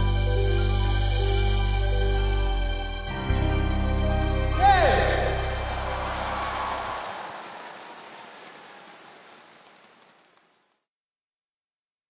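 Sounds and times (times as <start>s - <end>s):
audience applause: 4.5s - 10.8s.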